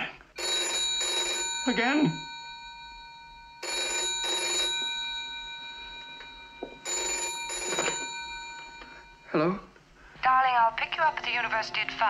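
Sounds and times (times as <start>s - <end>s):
telephone bell ringing: 0.4s - 9.7s.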